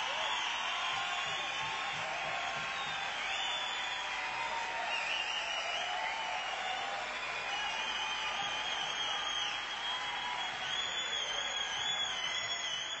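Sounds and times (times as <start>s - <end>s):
whistles: 0.0s - 1.9s, 2.6s - 4.2s, 4.8s - 13.0s
audience applauding and cheering: 0.0s - 13.0s.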